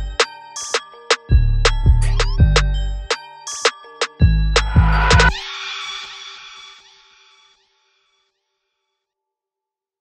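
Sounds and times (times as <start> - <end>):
hip-hop instrumental beat: 0.0 - 7.5.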